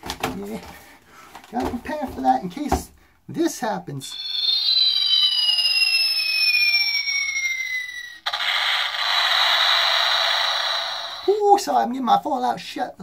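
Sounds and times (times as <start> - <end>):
falling whistle effect: 4.1 - 11.4
rising tone: 4.1 - 11.4.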